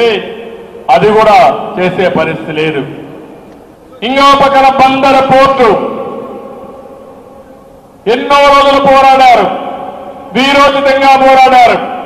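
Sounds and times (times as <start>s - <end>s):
amplified voice reverberation: 0.0s - 12.0s.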